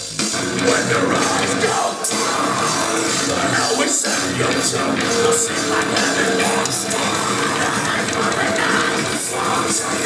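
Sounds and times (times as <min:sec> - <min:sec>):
metalcore band playing live: 0:00.0 - 0:10.0.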